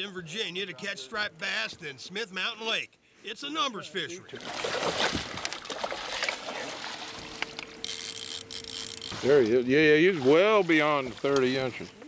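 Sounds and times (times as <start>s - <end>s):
water splashing and trickling: 4.3s - 7.4s, 9.0s - 11.7s
fish thrashing at surface: 4.3s - 9.4s.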